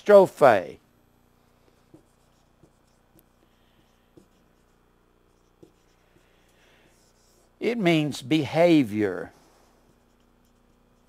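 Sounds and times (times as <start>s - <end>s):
marker tapping on whiteboard: 1.9s - 4.4s.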